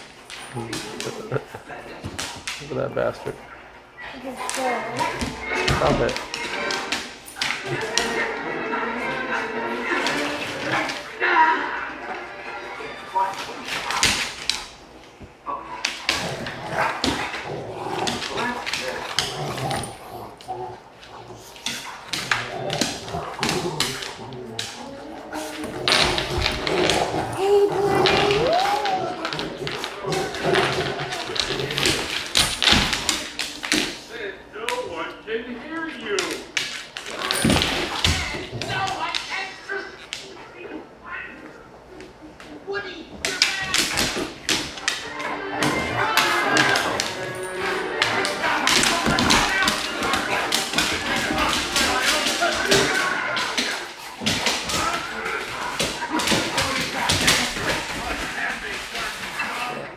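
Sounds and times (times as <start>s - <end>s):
dogs thumping on hardwood floor: 4.5s - 8.2s, 13.6s - 34.1s, 36.2s - 39.4s, 43.1s - 59.5s.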